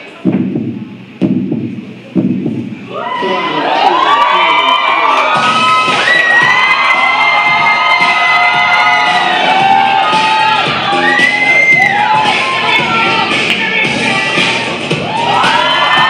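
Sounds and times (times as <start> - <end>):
audience cheering and screaming: 2.8 - 13.4, 14.9 - 16.0
pop dance music: 4.9 - 16.0.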